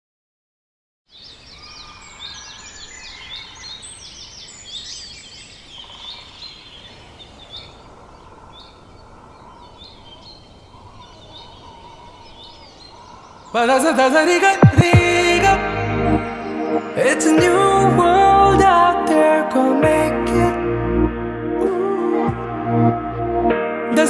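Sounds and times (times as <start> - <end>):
steady outdoor background hiss: 1.1 - 14.0
small birds chirping: 1.1 - 14.6.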